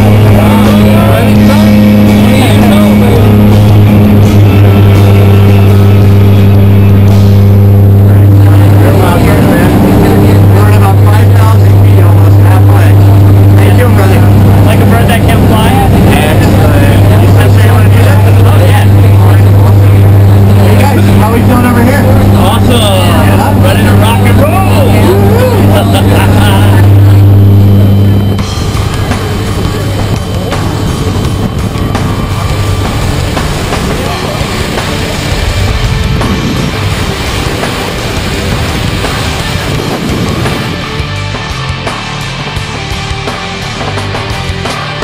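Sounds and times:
propeller plane engine drone: 0.0s - 45.0s.

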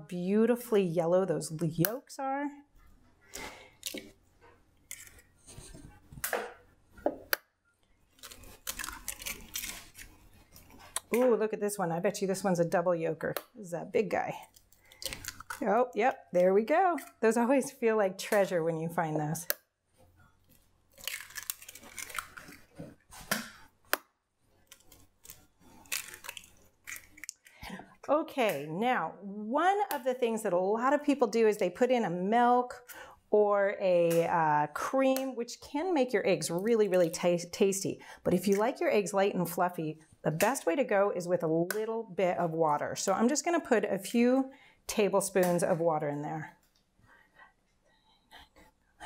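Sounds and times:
eggs cracking: 3.6s - 4.2s, 7.1s - 11.4s, 14.4s - 18.6s, 20.4s - 27.8s
eggshells cracking on glass bowl: 8.2s - 10.0s, 14.5s - 15.7s, 20.9s - 22.6s, 24.7s - 27.5s.

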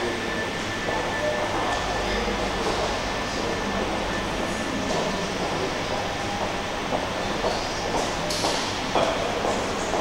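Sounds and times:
indoor rumbling background noise: 0.0s - 10.0s.

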